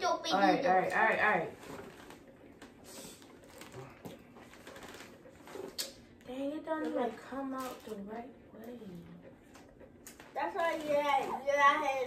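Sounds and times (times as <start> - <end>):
rustling of packaging: 1.5 - 5.9, 7.1 - 8.1.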